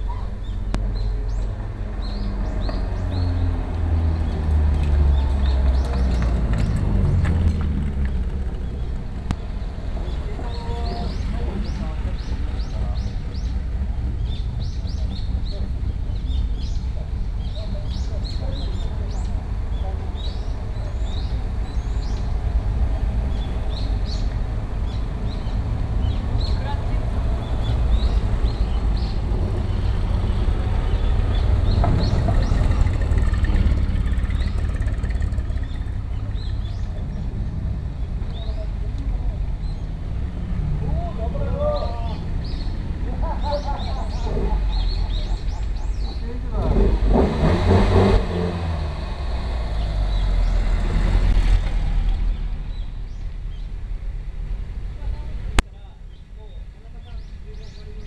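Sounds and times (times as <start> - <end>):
small birds chirping: 0.0 - 40.2, 40.8 - 46.6, 49.6 - 50.8, 52.1 - 53.7, 55.1 - 58.0
steady low rumble: 5.7 - 20.1, 27.1 - 41.5, 48.2 - 55.7
bird chirping: 23.3 - 40.0, 41.0 - 46.6.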